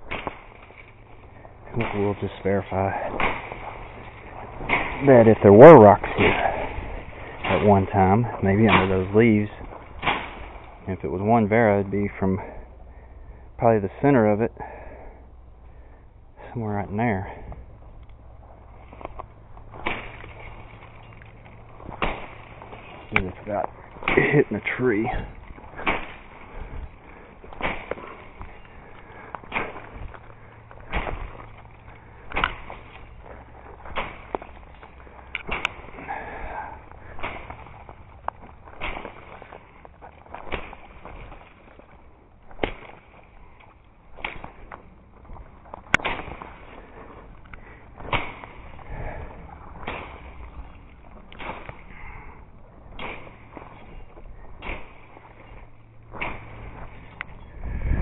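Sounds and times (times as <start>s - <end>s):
machete chopping brush: 0.0s - 1.0s, 1.7s - 10.7s, 19.7s - 20.8s, 21.8s - 26.8s, 27.5s - 36.3s, 37.0s - 41.6s, 42.5s - 43.3s, 44.1s - 44.6s, 45.9s - 47.0s, 47.9s - 50.6s, 51.3s - 51.9s, 52.9s - 57.1s.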